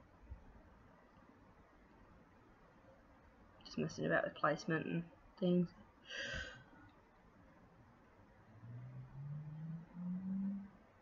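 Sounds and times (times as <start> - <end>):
low humming notes: 7.8 - 11.0.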